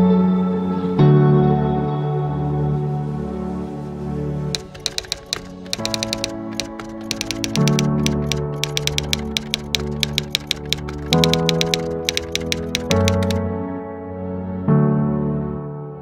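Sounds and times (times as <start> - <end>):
typewriter keystroke clicks: 4.6 - 13.4.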